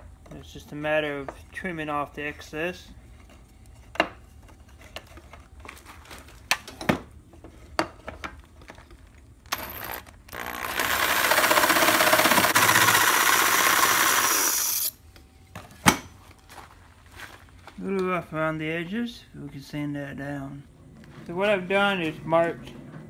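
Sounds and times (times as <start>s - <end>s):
jigsaw cutting bamboo: 9.6s - 15.0s.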